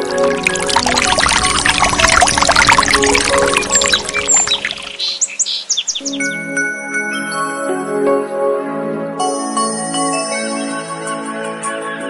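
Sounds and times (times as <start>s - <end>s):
water pouring and splashing: 0.0s - 5.7s
bird chirps: 0.0s - 6.4s
gentle music with steady tones: 0.0s - 12.0s.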